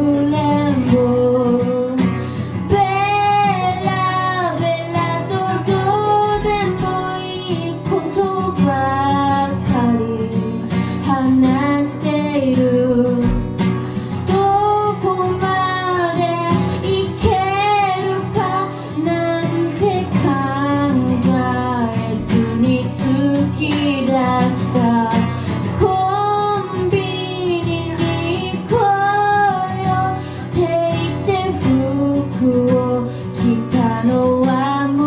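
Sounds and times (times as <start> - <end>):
person singing: 0.0 - 13.7
strummed acoustic guitar: 0.0 - 35.0.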